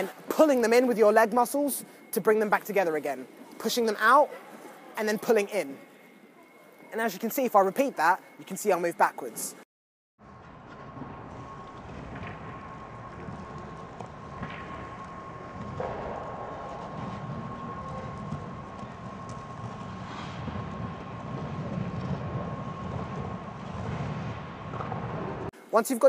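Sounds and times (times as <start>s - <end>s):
steady machinery tone: 0.0s - 9.6s, 10.2s - 25.5s.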